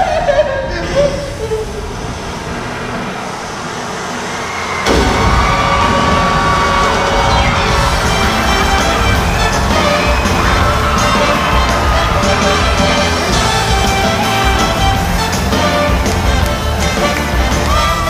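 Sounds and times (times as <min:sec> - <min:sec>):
sudden loud blast: 0:02.0 - 0:15.3
show music: 0:04.8 - 0:18.0.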